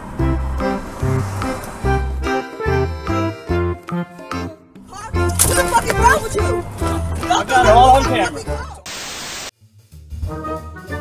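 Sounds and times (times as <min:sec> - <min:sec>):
static white noise burst: 0:08.9 - 0:09.5.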